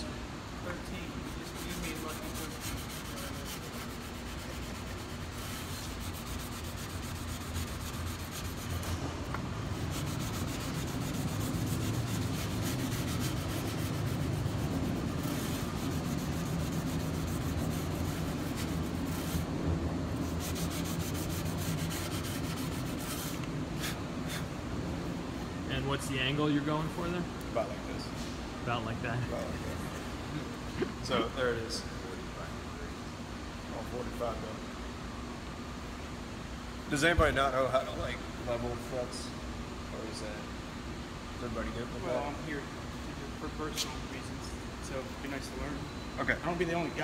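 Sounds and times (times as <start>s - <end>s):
sandpaper rubbing: 1.2s - 9.0s, 9.8s - 19.6s, 20.2s - 24.5s.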